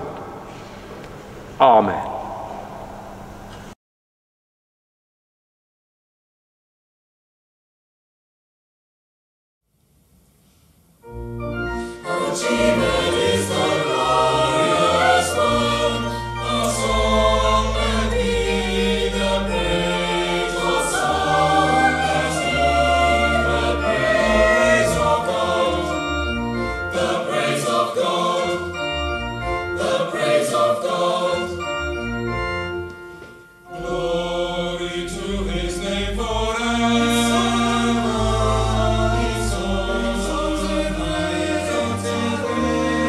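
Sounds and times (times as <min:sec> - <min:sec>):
organ low notes: 0:11.0 - 0:43.0
mixed choir singing: 0:12.0 - 0:31.9, 0:33.7 - 0:43.0.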